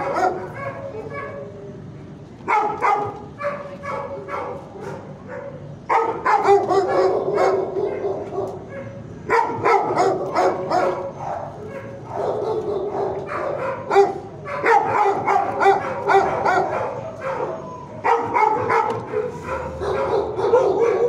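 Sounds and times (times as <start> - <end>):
dogs barking: 0.0 - 21.0.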